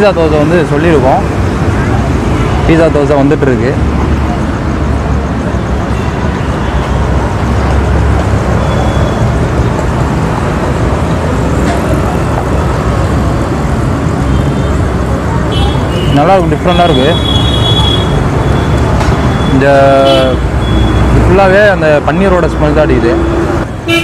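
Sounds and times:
crowd chatter: 0:00.0 - 0:23.9
road traffic rumble: 0:00.0 - 0:24.0.

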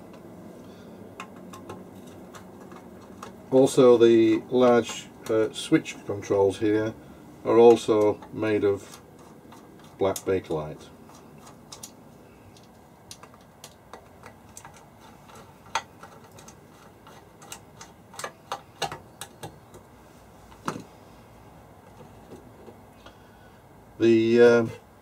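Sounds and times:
light clicks and taps of fittings: 0:11.1 - 0:19.8.

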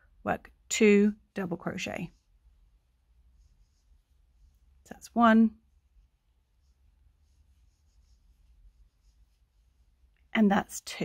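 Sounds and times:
soft rustling of yarn: 0:00.0 - 0:11.0.

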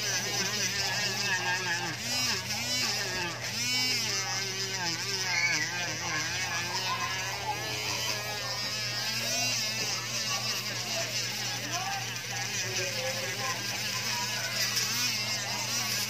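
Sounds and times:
rotary tool buzzing: 0:00.0 - 0:16.0.

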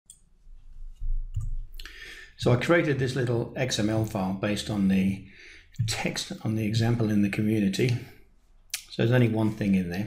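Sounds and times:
soft breathy hiss: 0:01.7 - 0:02.4.

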